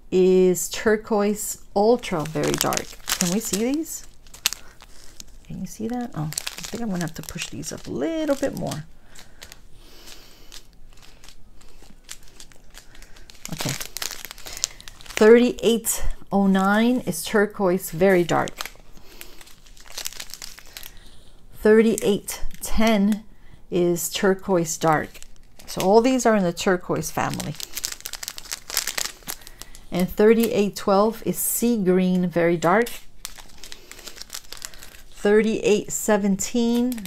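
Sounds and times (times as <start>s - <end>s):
plastic bags crinkling: 1.2s - 23.2s, 24.3s - 31.4s, 32.0s - 37.0s.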